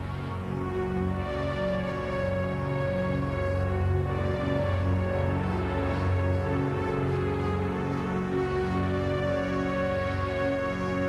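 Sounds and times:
sustained synthesizer chords: 0.0s - 11.0s.

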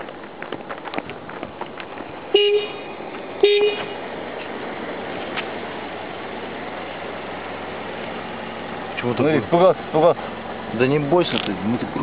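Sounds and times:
crackling background: 0.0s - 5.9s
car horn beeps: 2.3s - 4.0s.

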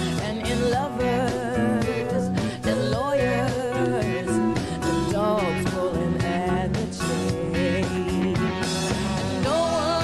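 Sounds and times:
drum kit: 0.0s - 10.0s
electric guitars: 0.0s - 10.0s
keyboard: 0.0s - 10.0s
woman singing lead vocal: 0.0s - 10.0s.

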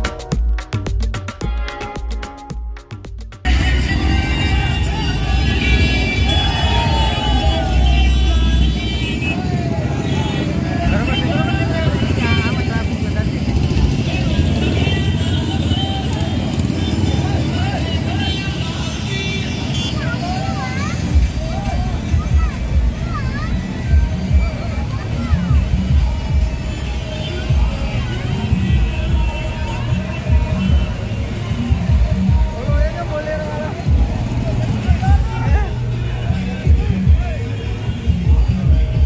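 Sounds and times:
music playing: 0.0s - 9.6s, 13.2s - 39.0s
motorcycle engines rumbling: 3.1s - 39.0s
crowd shouting: 3.5s - 12.6s, 13.6s - 32.5s.

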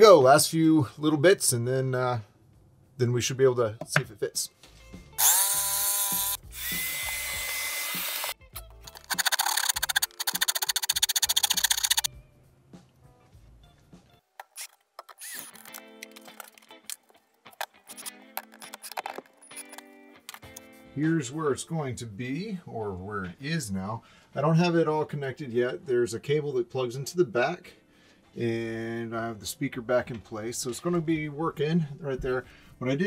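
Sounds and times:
soft background music: 0.0s - 10.5s, 12.1s - 33.0s
power saw cutting particleboard: 5.2s - 8.4s, 9.0s - 12.1s.

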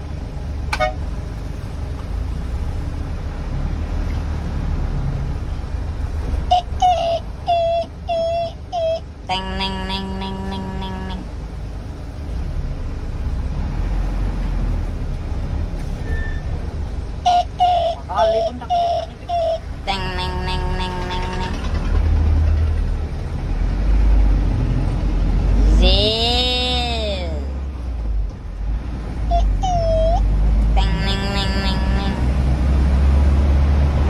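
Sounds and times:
vehicle engine running: 0.0s - 34.0s
short horn toots: 0.7s - 1.0s.

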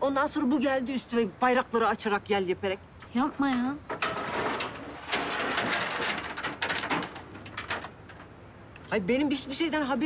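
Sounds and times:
metal security grille rattling: 3.2s - 8.4s.

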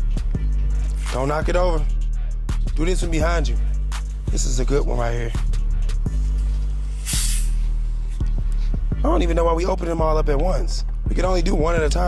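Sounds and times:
music with steady beat: 0.0s - 12.0s
gas hissing from soda bottle: 6.9s - 7.7s.

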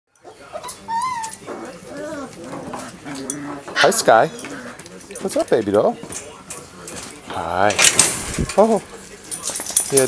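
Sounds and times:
dogs whining: 0.2s - 4.9s.

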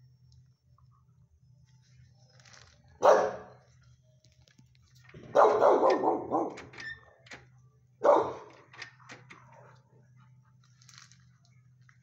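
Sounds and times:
dog barking: 3.0s - 3.6s, 5.2s - 6.6s, 8.0s - 8.5s.

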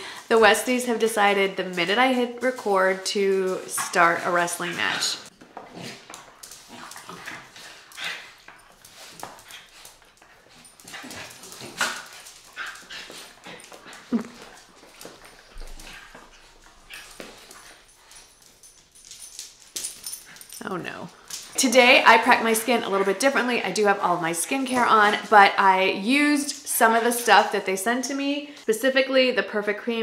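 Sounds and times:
dogs scuffling on tiles: 0.1s - 28.7s.

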